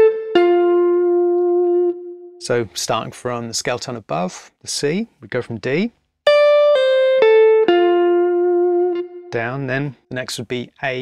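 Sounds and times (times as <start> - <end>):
electric guitar notes ringing: 0.0 - 2.5, 6.3 - 9.9.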